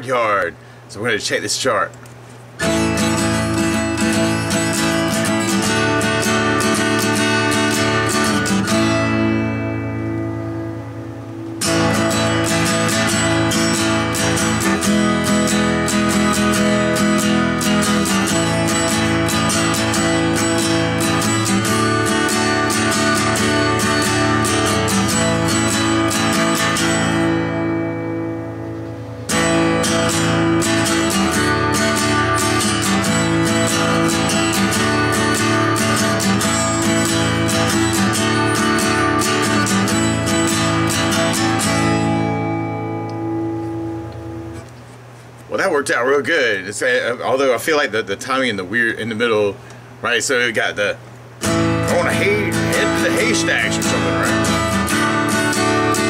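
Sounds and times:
acoustic guitar strumming: 0.0s - 56.0s.

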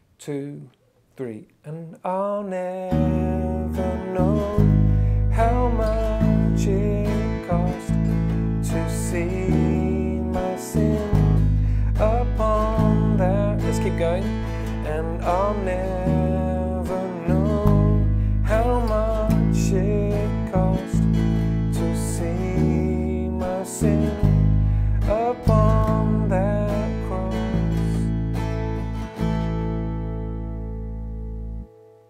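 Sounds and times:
person singing: 1.6s - 28.2s
strummed acoustic guitar chords: 2.5s - 32.0s
bass guitar held notes: 2.9s - 32.0s.

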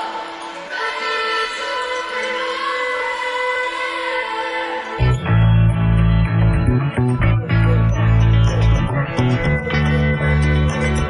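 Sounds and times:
choir holding sustained chords: 0.0s - 6.0s.

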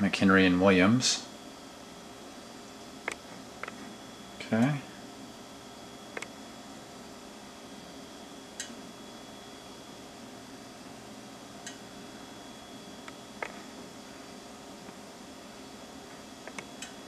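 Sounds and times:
faint high whine: 0.0s - 17.0s.

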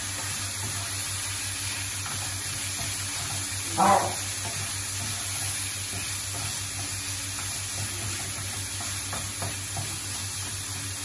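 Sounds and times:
meat sizzling in hot oil: 0.0s - 11.0s
wooden spatula stirring in wok: 0.0s - 11.0s.

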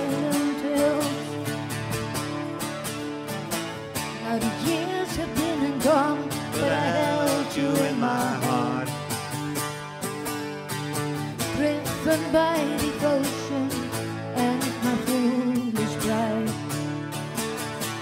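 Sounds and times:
woman singing: 0.0s - 1.4s, 4.2s - 8.7s, 11.4s - 16.6s
acoustic guitar strumming: 0.0s - 18.0s.

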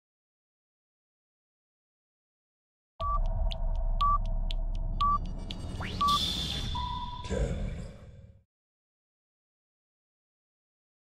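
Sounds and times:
short high beeps: 5.0s - 7.3s.

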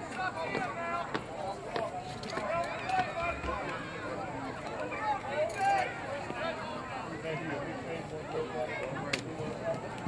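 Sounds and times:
people calling out and chattering: 0.0s - 10.0s.

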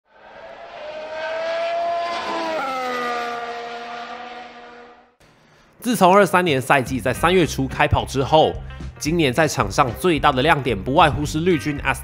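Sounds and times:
racing car engine revving: 0.1s - 5.2s.

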